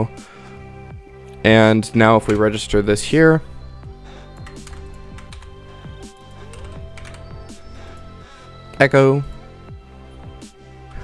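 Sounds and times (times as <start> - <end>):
quiet background music: 0.0 - 11.0
computer keyboard typing: 4.4 - 7.6.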